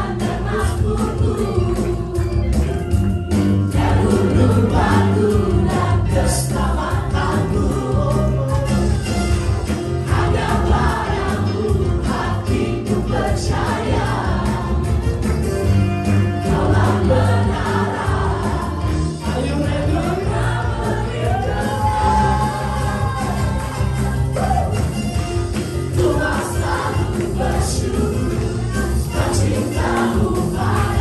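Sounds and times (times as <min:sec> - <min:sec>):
lead singers singing: 0:00.0 - 0:02.6, 0:03.7 - 0:08.9, 0:09.8 - 0:15.3, 0:16.4 - 0:24.8, 0:25.8 - 0:31.0
congregation singing along: 0:00.0 - 0:02.8, 0:03.4 - 0:24.7, 0:25.4 - 0:31.0
worship band playing: 0:00.0 - 0:31.0.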